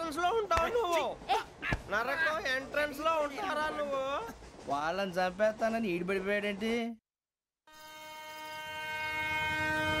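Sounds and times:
train horn blast: 0:07.7 - 0:10.0.

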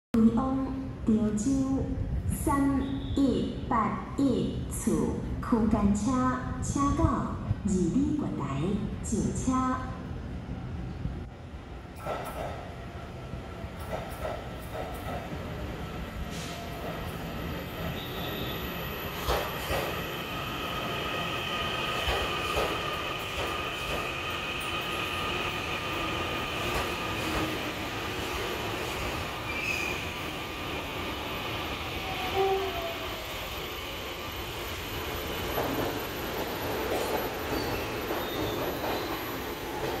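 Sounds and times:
train running gear rumbling: 0:11.9 - 0:12.8, 0:13.7 - 0:18.2, 0:18.8 - 0:31.0, 0:34.4 - 0:40.0.

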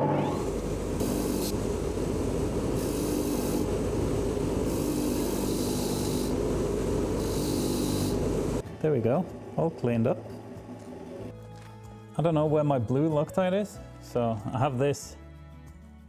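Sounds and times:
bench grinder humming: 0:00.0 - 0:08.6
high scratchy grinding of metal: 0:02.8 - 0:03.8, 0:04.6 - 0:06.4, 0:07.2 - 0:08.3.

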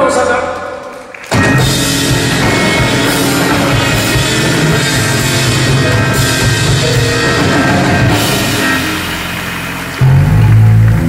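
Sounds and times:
live band playing: 0:01.2 - 0:11.0
loud low held chord: 0:01.4 - 0:11.0.

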